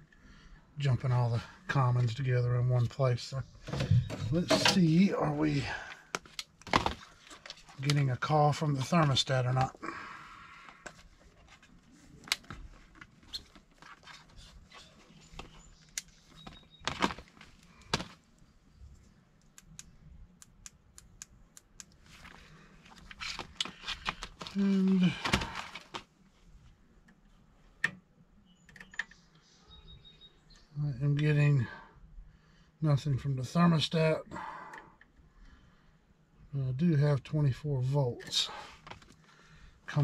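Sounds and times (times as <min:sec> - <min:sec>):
light clicks of handling wires: 0:10.7 - 0:28.0.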